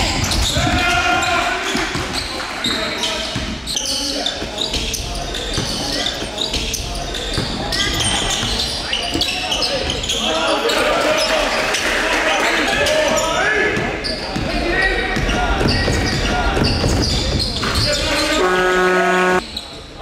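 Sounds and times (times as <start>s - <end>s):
sneaker squeaks: 0.0s - 11.6s, 12.8s - 20.0s.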